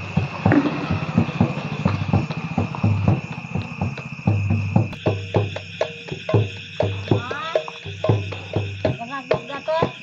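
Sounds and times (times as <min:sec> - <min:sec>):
drum-like beats and thumps: 0:00.0 - 0:10.0.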